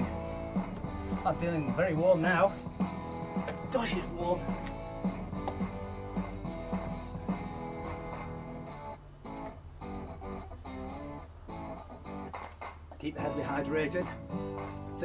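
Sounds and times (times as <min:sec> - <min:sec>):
plucked guitar music: 0:00.0 - 0:15.0.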